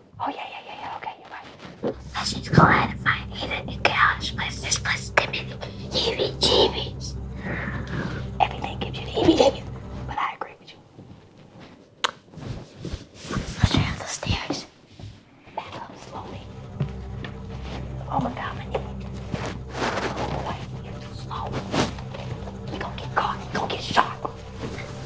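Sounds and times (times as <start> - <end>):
hushed whispering voices: 0.2 - 10.8, 13.3 - 14.7, 17.9 - 24.8
low steady drone: 1.9 - 11.6, 15.6 - 25.0.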